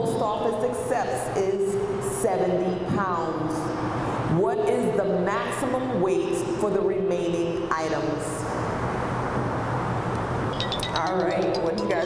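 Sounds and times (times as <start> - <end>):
room and microphone noise: 0.0 - 12.0
light metallic jingles: 10.5 - 12.0.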